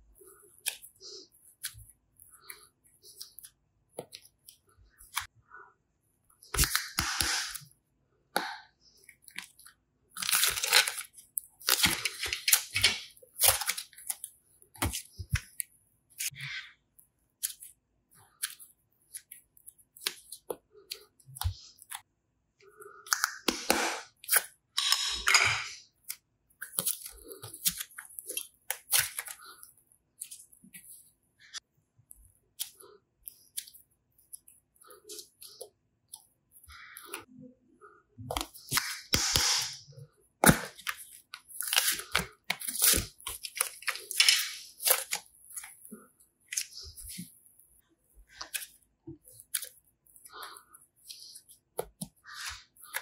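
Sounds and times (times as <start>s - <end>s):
foam clay rustling and squishing: 0.0s - 24.8s, 25.7s - 53.0s.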